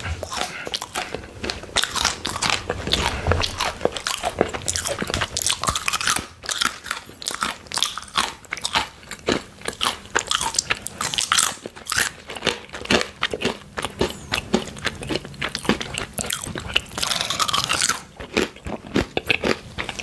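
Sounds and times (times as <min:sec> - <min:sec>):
crunching and chewing chips: 0:00.0 - 0:20.0.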